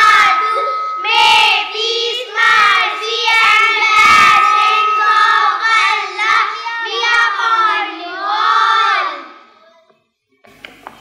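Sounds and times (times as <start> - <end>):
steady high tone: 0.0 - 8.7
children singing together: 0.0 - 9.5.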